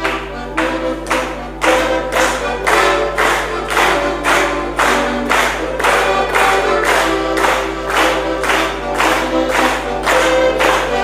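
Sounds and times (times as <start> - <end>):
button accordion playing folk tune: 0.0 - 11.0.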